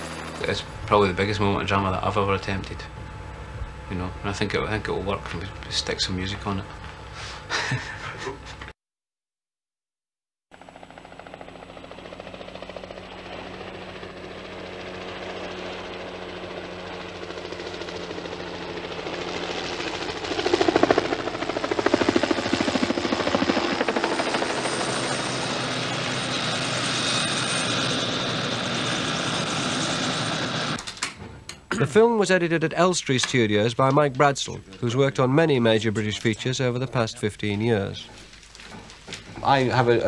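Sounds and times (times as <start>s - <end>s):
helicopter rotor beat: 0.0s - 8.7s, 10.5s - 30.8s, 34.4s - 40.0s.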